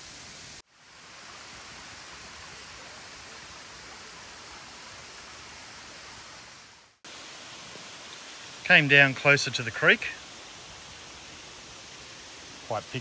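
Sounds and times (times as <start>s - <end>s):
creek water rushing: 0.0s - 13.0s.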